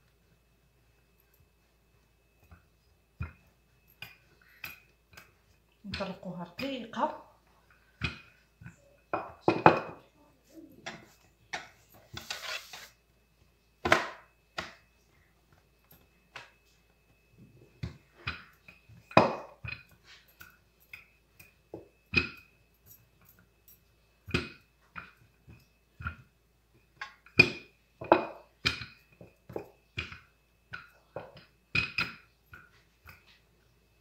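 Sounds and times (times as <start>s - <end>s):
rolling pin scraping: 10.9s - 13.0s
rolling pin knocking on countertop: 19.1s - 19.6s, 27.4s - 28.9s.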